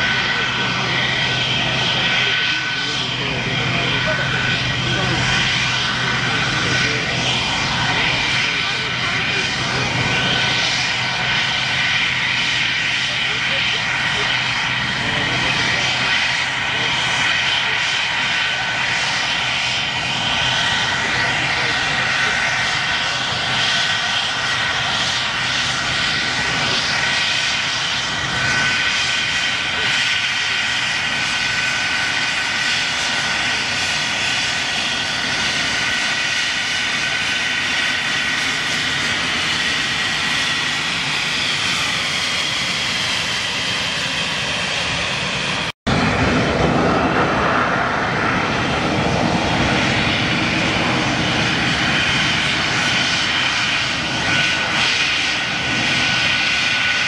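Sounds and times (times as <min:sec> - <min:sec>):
high jet engine whine: 0:00.0 - 0:57.0
jet engines running: 0:00.0 - 0:57.0.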